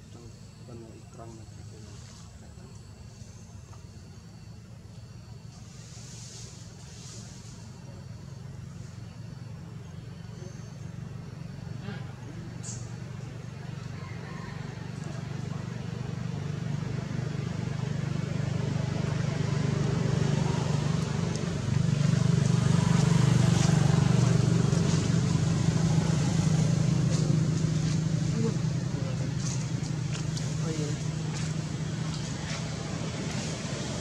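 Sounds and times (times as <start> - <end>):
motor engine humming: 0.0 - 34.0.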